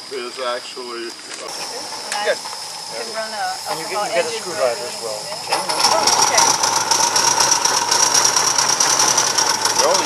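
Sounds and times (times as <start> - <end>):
hissing whine: 0.0 - 10.0
model steam locomotive ticking: 5.5 - 10.0.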